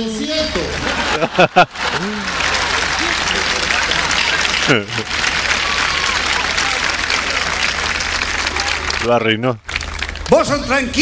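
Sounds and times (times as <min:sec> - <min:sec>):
large audience applauding: 0:00.8 - 0:10.8.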